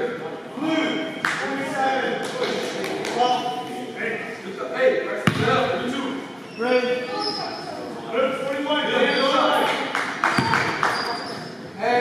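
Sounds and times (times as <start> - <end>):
basketball bouncing on hardwood floor: 5.3 - 5.5, 10.4 - 10.7.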